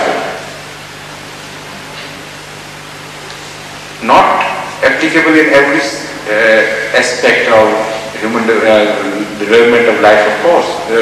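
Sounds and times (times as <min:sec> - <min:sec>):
tape hiss: 0:00.0 - 0:11.0.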